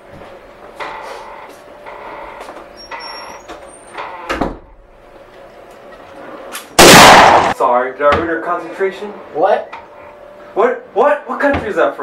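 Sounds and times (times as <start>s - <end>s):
loud gunshot: 6.8s - 7.6s.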